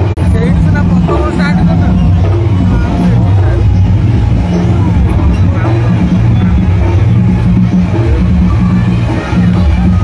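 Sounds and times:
crowd talking: 0.0s - 10.0s
steady low rumble: 0.0s - 10.0s.

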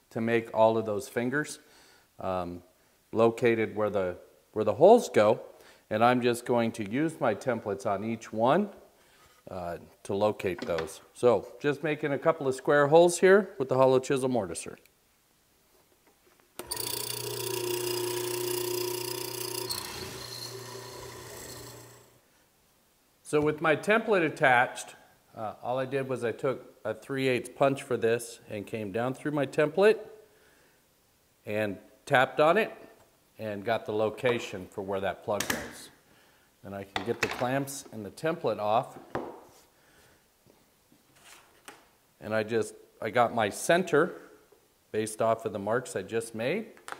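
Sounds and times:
mortiser motor humming and whining: 16.6s - 22.2s.

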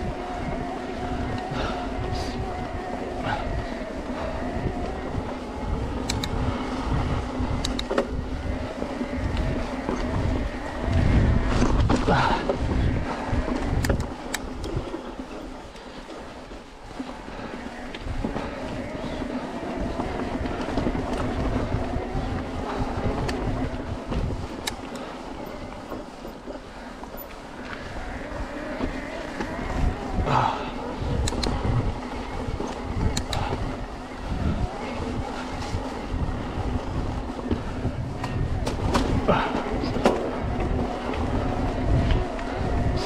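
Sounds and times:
bike clicks: 0.0s - 43.0s
electric bike motor whining: 0.0s - 43.0s
tyres rumbling on gravel: 0.0s - 43.0s.

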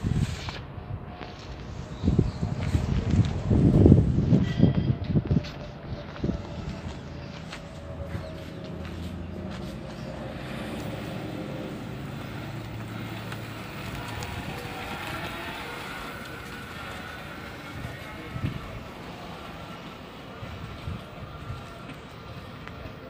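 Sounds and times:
electric motorcycle whine: 10.1s - 23.0s.

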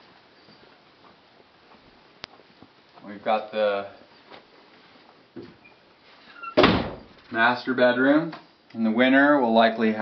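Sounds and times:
door thumping open: 6.6s - 7.1s.

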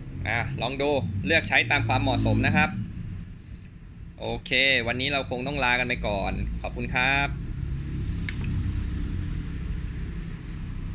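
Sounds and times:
low background rumble: 0.0s - 10.9s.

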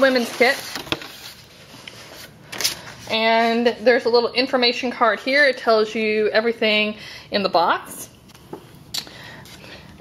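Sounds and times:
paper and cardboard rustling: 0.0s - 3.9s.

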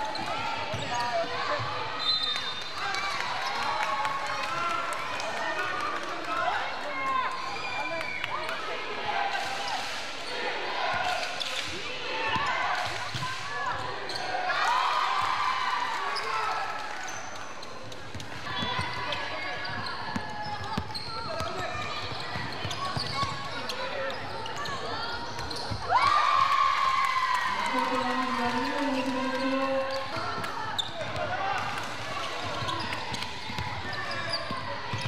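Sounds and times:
basketball dribbled on gym floor: 32.3s - 35.0s.

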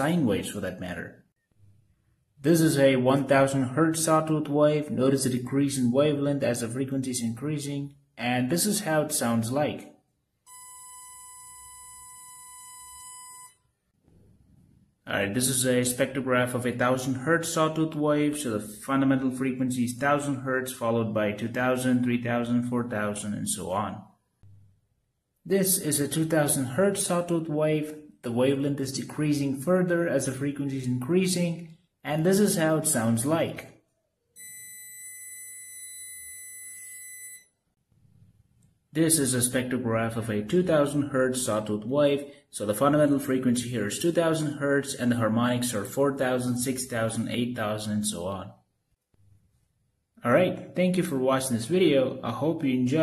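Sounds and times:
buzzy sawtooth test tone: 10.5s - 13.6s.

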